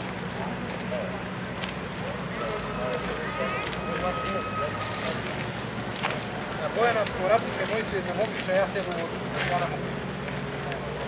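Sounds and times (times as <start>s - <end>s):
faint indistinct voices: 0.0s - 11.0s
thin steady whine: 0.2s - 8.1s.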